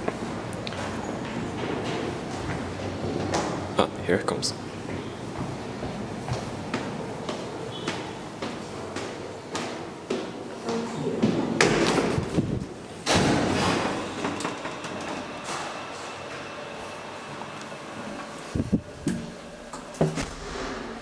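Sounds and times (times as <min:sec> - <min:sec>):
elevator doors clicks and clunks: 0:11.2 - 0:16.5.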